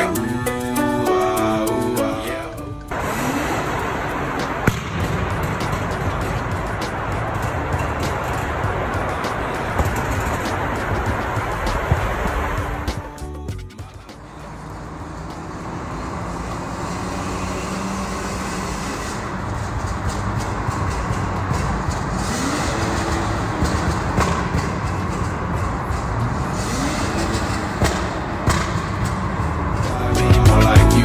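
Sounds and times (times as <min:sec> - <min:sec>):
car engine accelerating in tunnel: 0:02.4 - 0:13.0, 0:14.1 - 0:30.1.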